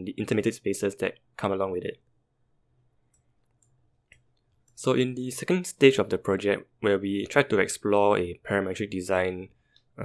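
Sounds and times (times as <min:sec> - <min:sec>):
faint room hum: 0:00.0 - 0:10.0
soft clicks: 0:03.1 - 0:04.8.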